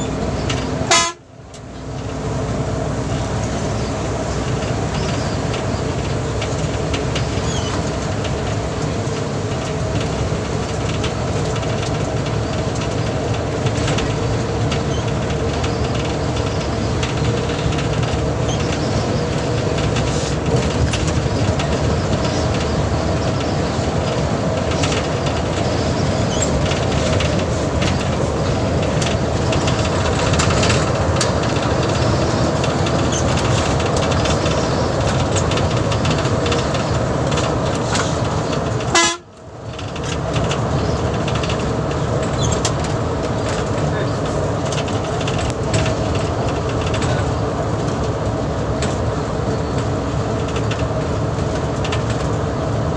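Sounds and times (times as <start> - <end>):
bus engine and tyre drone: 0.0 - 52.9
bodywork rattles and clicks: 1.5 - 52.9.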